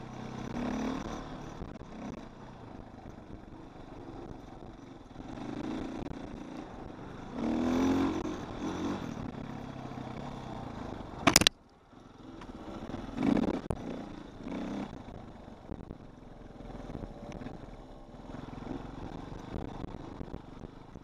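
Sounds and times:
dirt bike engine revving: 0:00.0 - 0:02.2, 0:05.2 - 0:11.4, 0:12.6 - 0:15.2.

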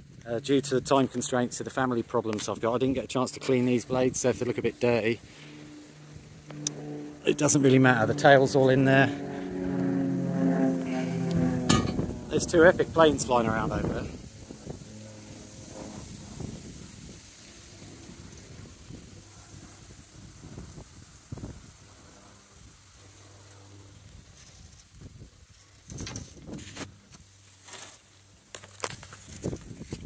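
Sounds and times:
wind blowing on microphone: 0:11.2 - 0:14.9, 0:15.7 - 0:21.8, 0:24.1 - 0:26.9, 0:28.9 - 0:30.0.

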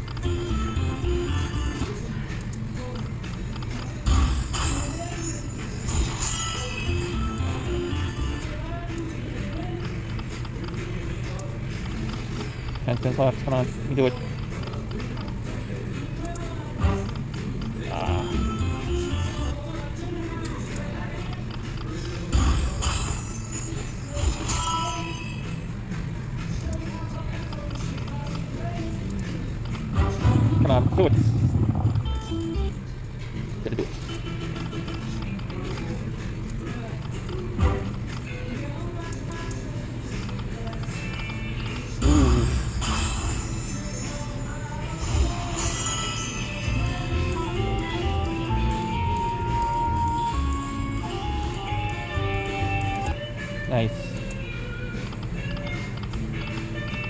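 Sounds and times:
slot machine sounds and music: 0:00.0 - 0:08.7, 0:16.8 - 0:19.6, 0:22.2 - 0:26.4, 0:29.0 - 0:36.1, 0:41.0 - 0:57.0.

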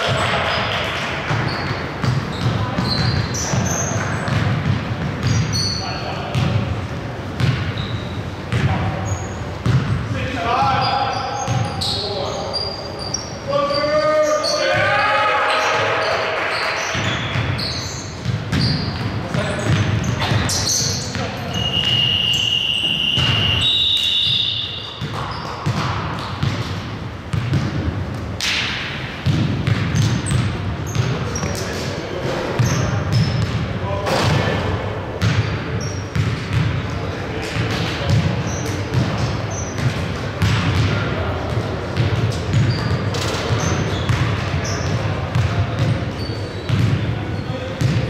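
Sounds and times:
sneakers squeaking: 0:00.0 - 0:48.0
players shouting: 0:13.6 - 0:17.0
referee's whistle: 0:21.5 - 0:25.0
basketball bouncing on hardwood: 0:46.7 - 0:47.0, 0:47.8 - 0:48.0.

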